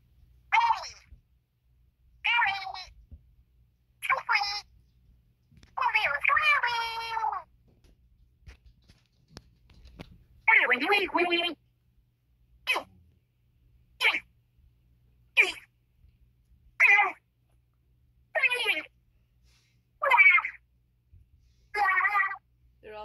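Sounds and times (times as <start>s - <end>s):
squeaky wordless voice: 0.5s - 1.1s, 2.2s - 3.0s, 4.0s - 4.7s, 5.8s - 7.5s, 10.5s - 11.6s, 12.6s - 13.0s, 14.0s - 14.3s, 15.4s - 15.7s, 16.8s - 17.2s, 18.4s - 19.0s, 20.0s - 20.6s, 21.8s - 23.0s.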